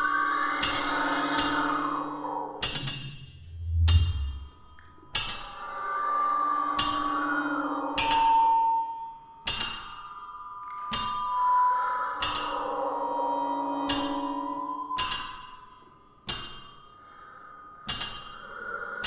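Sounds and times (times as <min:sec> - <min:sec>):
solo flute: 0:10.3 - 0:15.9.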